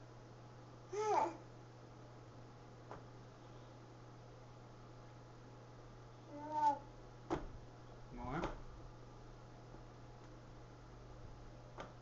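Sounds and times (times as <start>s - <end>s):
low steady hum: 0.0s - 12.0s
baby vocalizing: 0.9s - 1.4s.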